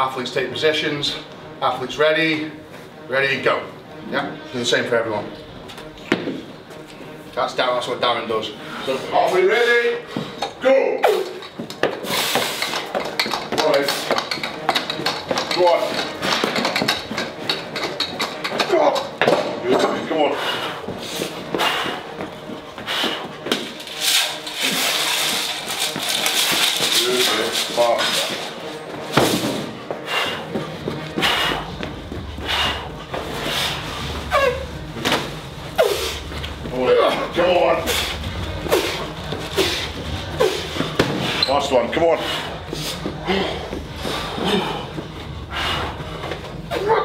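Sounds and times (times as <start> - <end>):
heavy footsteps: 5.2 - 7.4, 8.0 - 10.6, 11.2 - 47.0.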